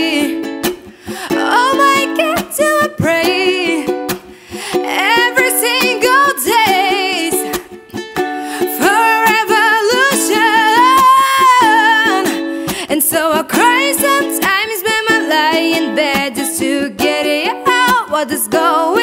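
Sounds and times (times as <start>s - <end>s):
woman singing: 0.0s - 7.8s, 8.4s - 19.0s
strummed ukulele: 0.0s - 19.0s.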